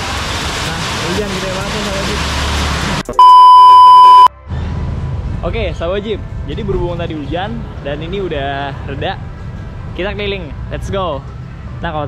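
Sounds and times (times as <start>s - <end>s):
test-tone beep: 3.2s - 4.3s.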